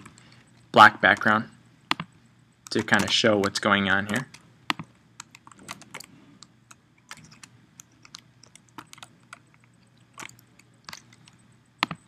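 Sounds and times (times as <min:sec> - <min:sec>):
computer mouse and keyboard clicking: 0:00.0 - 0:12.0
faint low steady hum: 0:00.0 - 0:12.0.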